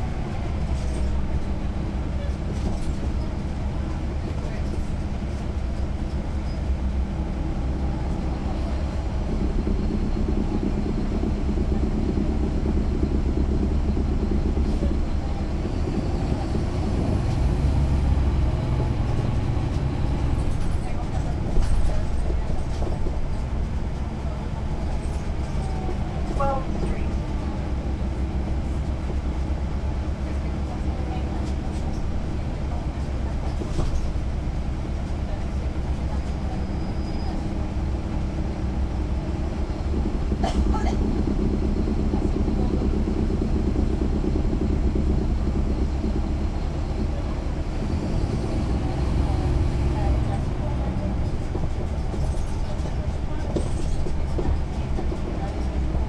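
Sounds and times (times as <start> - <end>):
bus diesel engine drone: 0.0 - 56.0.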